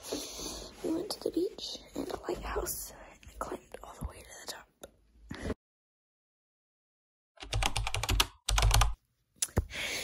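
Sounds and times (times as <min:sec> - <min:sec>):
person whispering: 0:00.7 - 0:05.0.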